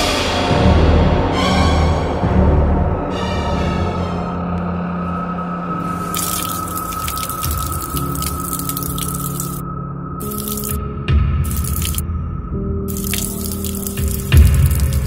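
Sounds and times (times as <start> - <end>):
water dripping: 6.0 - 9.6, 10.2 - 10.8, 11.4 - 12.0, 12.9 - 15.0.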